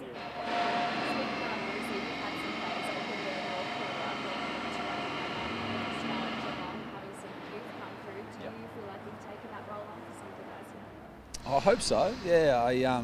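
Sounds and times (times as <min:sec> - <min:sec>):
aircraft engine passing over: 0:00.0 - 0:13.0.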